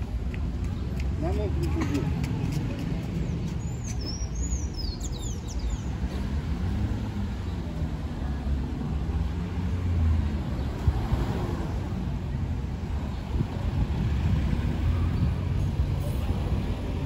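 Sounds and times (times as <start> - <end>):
car traffic rumble: 0.0 - 17.0
passers-by talking: 0.0 - 17.0
bird chirping: 3.2 - 5.9.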